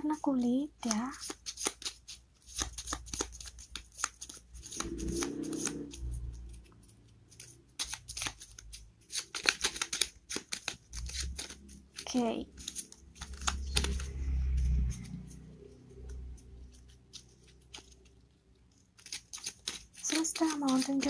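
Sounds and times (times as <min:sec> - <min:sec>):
paper cards shuffling: 0:00.1 - 0:21.0.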